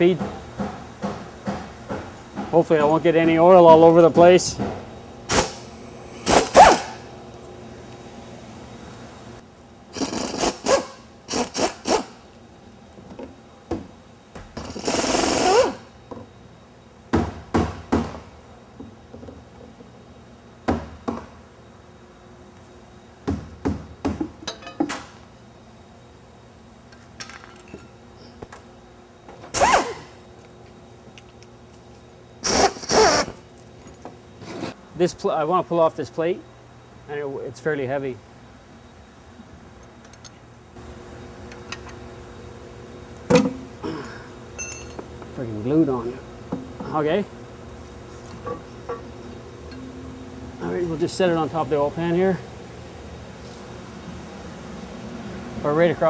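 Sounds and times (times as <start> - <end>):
pneumatic wrench bursts: 5.3 - 7.0, 9.9 - 12.2, 14.6 - 15.9, 29.5 - 30.1, 32.4 - 33.4.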